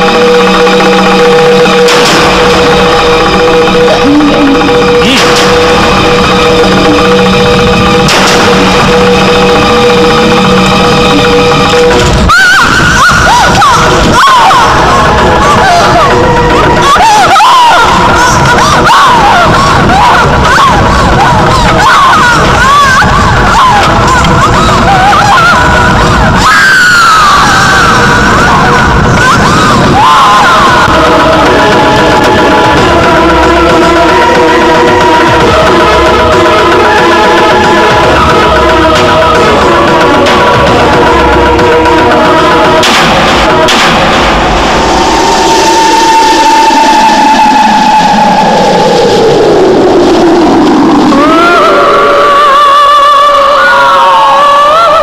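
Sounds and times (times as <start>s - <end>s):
sharp musical hits: 0.0s - 51.1s
held high tone: 0.0s - 51.4s
horror film score: 0.0s - 55.0s
high voices calling and laughing: 12.4s - 33.2s.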